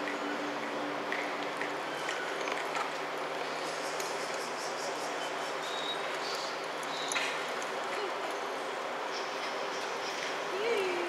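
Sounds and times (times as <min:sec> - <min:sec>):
indoor livestock arena background noise: 0:00.0 - 0:11.0.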